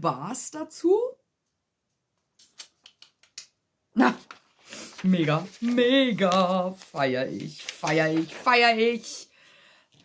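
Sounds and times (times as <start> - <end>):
paper sheet crackling: 4.0 - 9.2.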